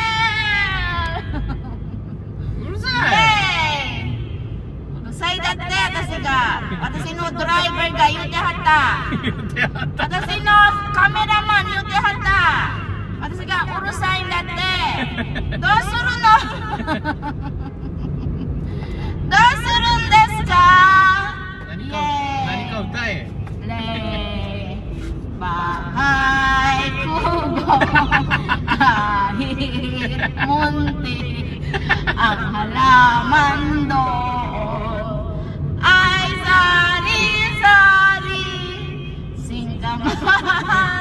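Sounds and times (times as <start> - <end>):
car road rumble: 0.0 - 41.0.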